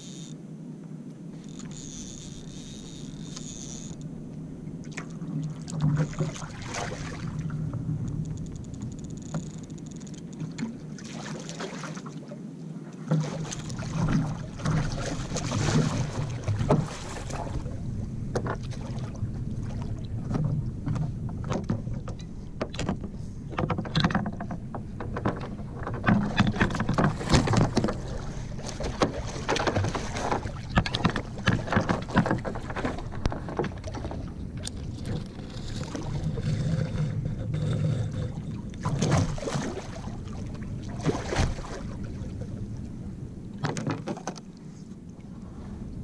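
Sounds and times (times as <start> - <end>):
water splashing: 4.8 - 7.8, 10.4 - 12.4, 13.0 - 22.8, 25.2 - 42.6.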